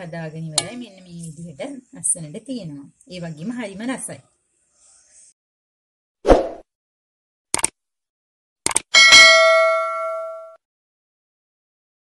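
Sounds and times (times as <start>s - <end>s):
notification bell chime: 9.0s - 10.6s.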